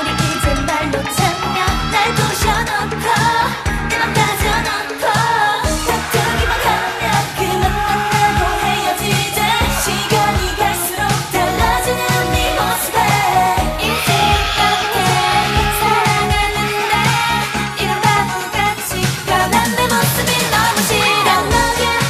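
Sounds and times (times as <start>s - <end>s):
backing track with steady beat: 0.0s - 22.0s
women singing pop dance song: 0.0s - 22.0s.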